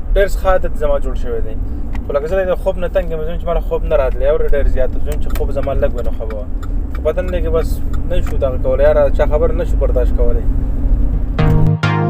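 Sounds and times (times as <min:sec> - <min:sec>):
car driving rumble: 0:00.0 - 0:11.4
man talking: 0:00.1 - 0:10.5.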